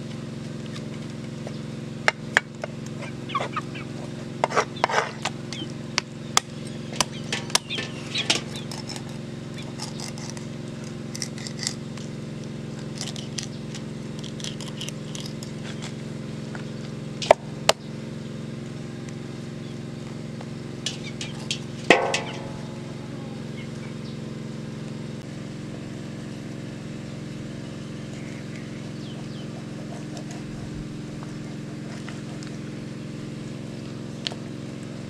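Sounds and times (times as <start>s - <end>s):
steady low hum: 0.0s - 35.0s
knife scraping raw fish: 9.8s - 11.8s.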